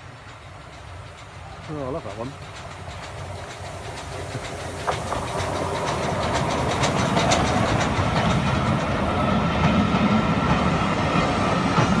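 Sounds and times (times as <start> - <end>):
carriages rumbling: 0.0 - 12.0
train wheels clicking on rails: 0.0 - 12.0.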